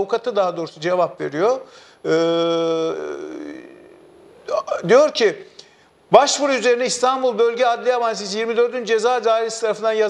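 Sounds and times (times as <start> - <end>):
man's drawn-out hesitation sound: 2.0 - 7.4.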